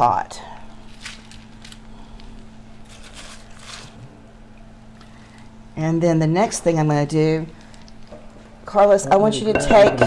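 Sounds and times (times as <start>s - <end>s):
steady low hum: 0.0s - 10.0s
cabbage rustling into pan: 2.8s - 4.0s.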